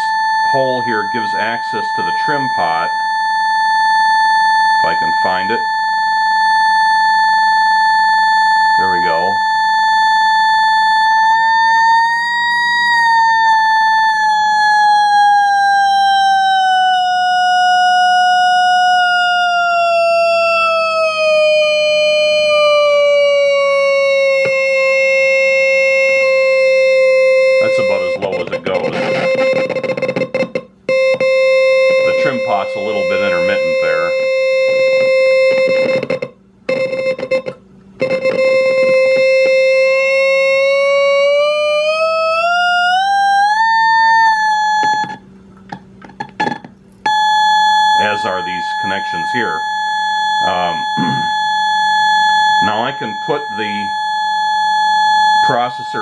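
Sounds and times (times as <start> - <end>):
buzzy square-wave tone: 0.0 - 56.0.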